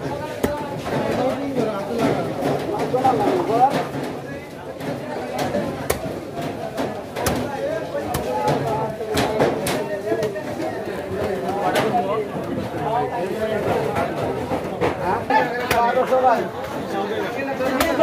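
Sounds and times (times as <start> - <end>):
chatter of voices: 0.0 - 18.0
knife chopping through bone: 7.2 - 7.5.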